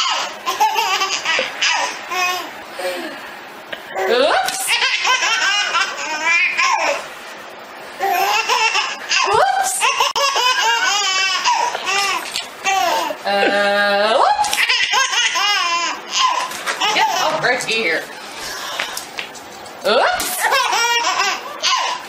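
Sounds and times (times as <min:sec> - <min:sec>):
baby laughing: 0:00.0 - 0:02.5, 0:03.9 - 0:07.0, 0:08.0 - 0:13.2, 0:14.4 - 0:17.4, 0:20.2 - 0:22.0.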